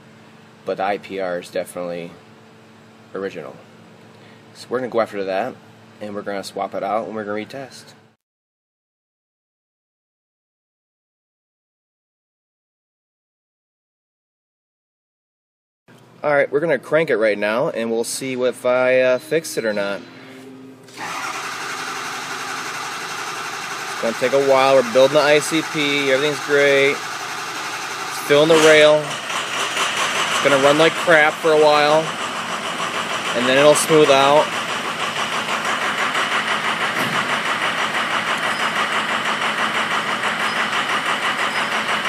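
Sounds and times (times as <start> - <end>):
diesel engine cranking by starter: 20.9 - 42.0.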